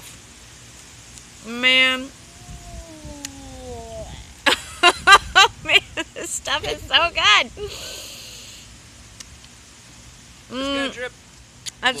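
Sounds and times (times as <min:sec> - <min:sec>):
person humming mmm: 0:02.3 - 0:04.3
bursts of laughter: 0:04.4 - 0:06.8.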